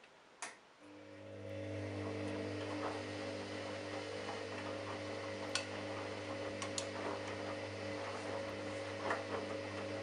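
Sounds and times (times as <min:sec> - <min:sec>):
washing machine drum motor humming: 0:00.9 - 0:10.0.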